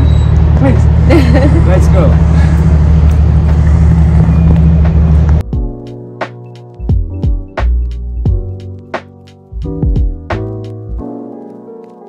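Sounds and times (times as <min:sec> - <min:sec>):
vehicle engine idling: 0:00.0 - 0:05.4.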